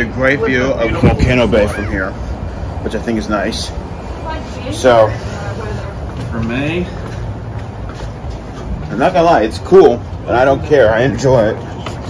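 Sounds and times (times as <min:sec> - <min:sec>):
low outdoor rumble: 0:00.0 - 0:12.0.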